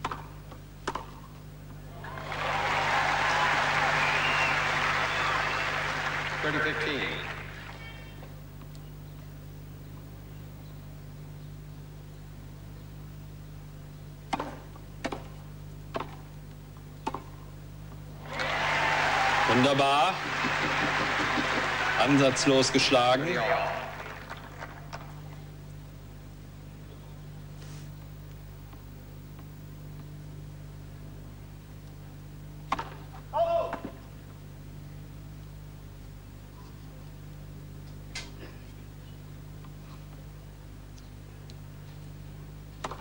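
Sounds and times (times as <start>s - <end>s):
tennis ball struck: 0.0s - 1.2s, 14.3s - 15.3s
low broadcast hum: 0.0s - 43.0s
person shouting call: 33.3s - 33.9s.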